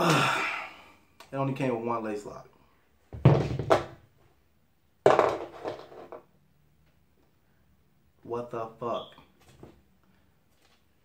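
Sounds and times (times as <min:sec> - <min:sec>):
man's breathy vocal sound: 0:00.0 - 0:01.1.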